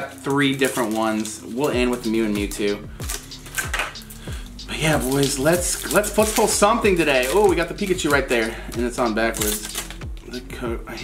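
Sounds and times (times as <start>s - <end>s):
foil wrappers crinkling: 0.0s - 2.0s, 4.8s - 10.0s
background music with falling bass: 1.5s - 11.0s.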